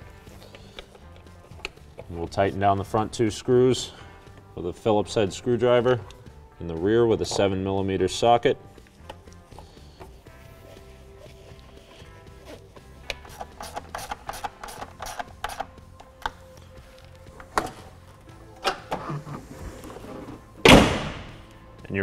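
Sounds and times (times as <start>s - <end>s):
background music: 0.0s - 22.0s
truck hood slammed shut: 20.6s - 21.4s.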